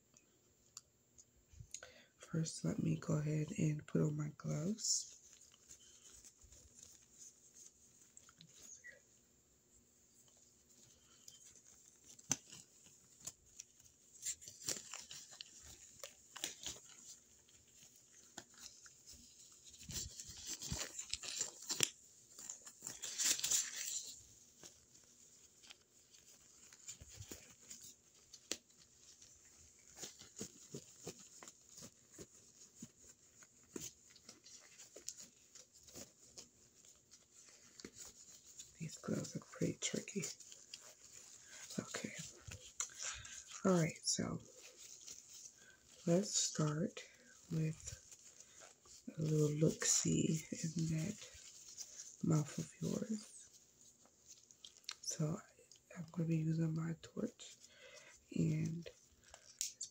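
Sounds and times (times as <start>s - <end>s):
glove rustling: 4.6s - 56.0s, 57.5s - 59.9s
gloves crinkling and snapping: 4.6s - 56.2s, 57.3s - 59.9s.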